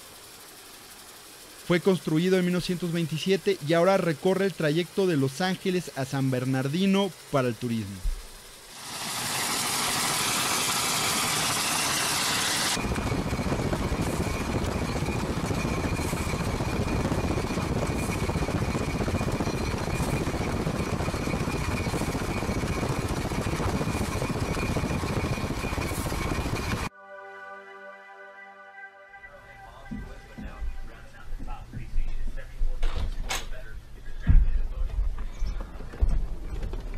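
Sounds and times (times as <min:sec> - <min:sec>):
steam locomotive rumble with whine: 0:00.0 - 0:26.9
steam locomotive hissing: 0:08.7 - 0:26.9
wind noise: 0:12.8 - 0:26.9.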